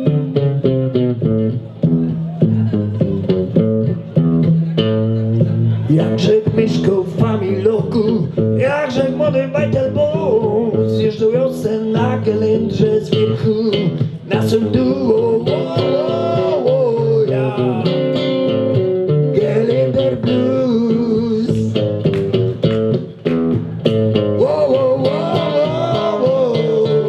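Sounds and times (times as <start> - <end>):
fingerpicked acoustic guitar: 0.0 - 27.0
man singing: 5.8 - 18.3, 19.2 - 22.0, 24.3 - 27.0.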